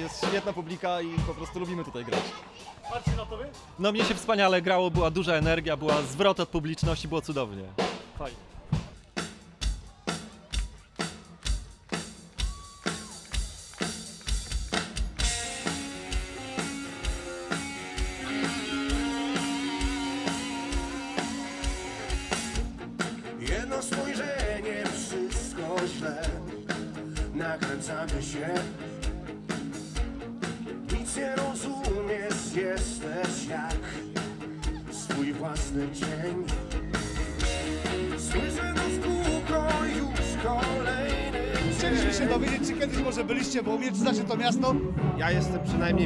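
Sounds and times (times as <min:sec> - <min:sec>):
drum kit beat: 0:00.0 - 0:43.7
guitar: 0:08.4 - 0:46.0
person singing: 0:23.4 - 0:29.2, 0:30.8 - 0:42.8.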